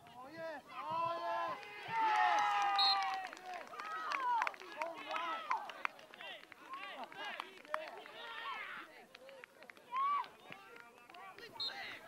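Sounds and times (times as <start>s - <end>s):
people shouting and cheering: 0.0s - 12.0s
hands clapping: 1.5s - 11.9s.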